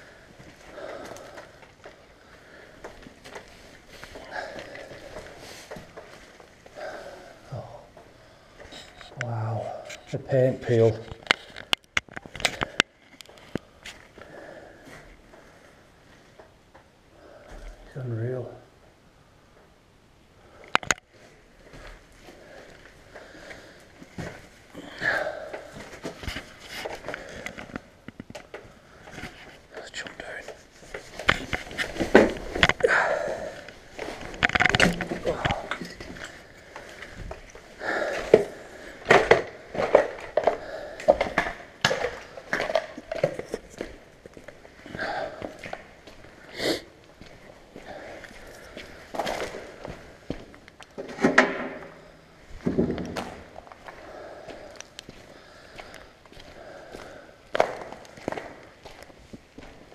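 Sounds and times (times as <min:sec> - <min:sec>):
man speaking low: 0:09.2 - 0:11.1, 0:17.8 - 0:18.7, 0:29.8 - 0:30.5
footsteps crunching on concrete: 0:52.5 - 0:59.9.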